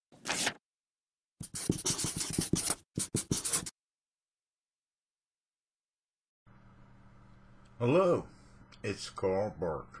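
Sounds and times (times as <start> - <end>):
marker pen scribbling on paper: 1.4 - 3.8.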